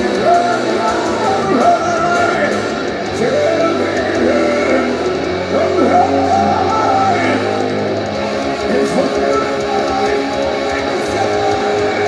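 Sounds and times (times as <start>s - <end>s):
distorted electric guitar: 0.0s - 12.0s
person singing: 0.0s - 12.0s.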